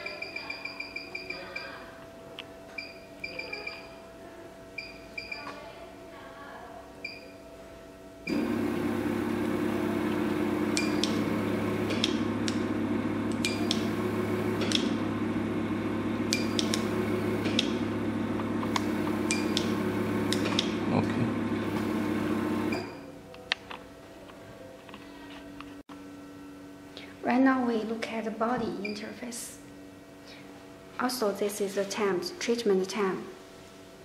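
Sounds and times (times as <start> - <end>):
machine low hum: 7.0 - 31.5
sharp clicks: 16.3 - 17.7, 20.3 - 20.7.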